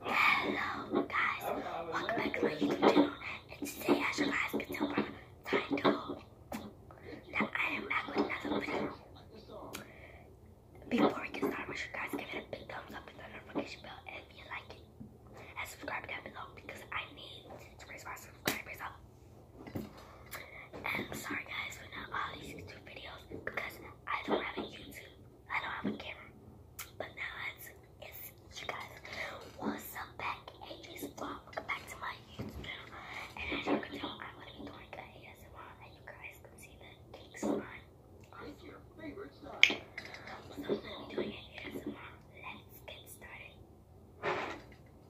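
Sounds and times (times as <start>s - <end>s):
woman whispering: 0.0s - 9.1s, 10.8s - 19.0s, 20.3s - 39.0s, 39.9s - 43.6s.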